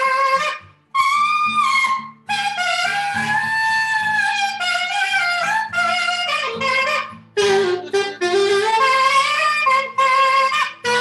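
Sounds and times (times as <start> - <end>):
acoustic guitar chords: 0.0 - 11.0
alto saxophone melody: 0.0 - 11.0.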